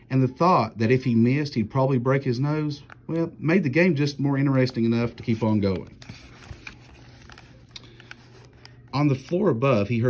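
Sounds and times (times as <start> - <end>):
low steady hum: 0.0 - 10.0
book pages turning: 4.4 - 10.0.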